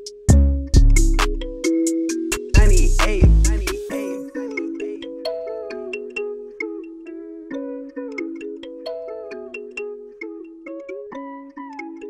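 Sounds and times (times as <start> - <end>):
plucked guitar melody: 0.0 - 12.0.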